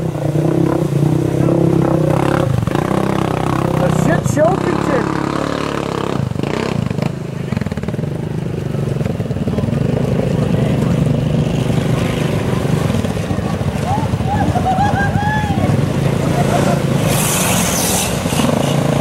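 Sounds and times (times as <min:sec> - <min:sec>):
quad engine running under load: 0:00.0 - 0:19.0
vehicle wading through muddy water: 0:00.0 - 0:19.0.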